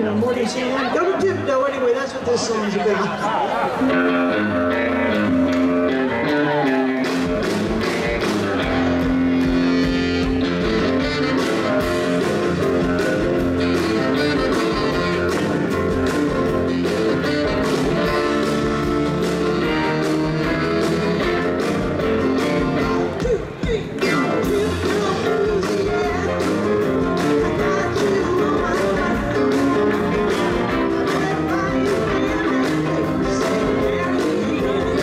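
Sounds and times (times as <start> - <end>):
electric guitar: 3.1 - 35.0
saxophone: 3.8 - 35.0
drums keeping steady beat: 4.8 - 35.0.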